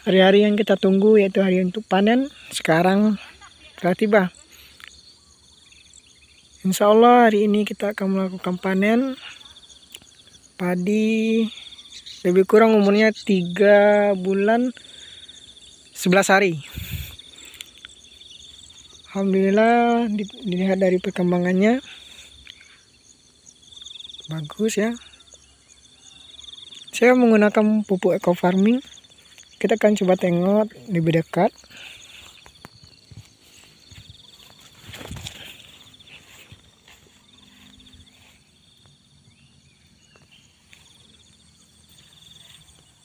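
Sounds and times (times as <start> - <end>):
insects trilling: 0.0 - 43.0
steps rustling through grass: 28.4 - 43.0.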